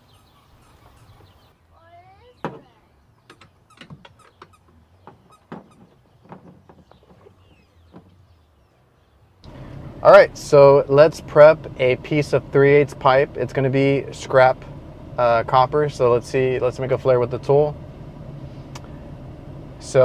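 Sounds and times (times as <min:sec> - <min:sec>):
soft chirping glides: 0:00.0 - 0:01.6.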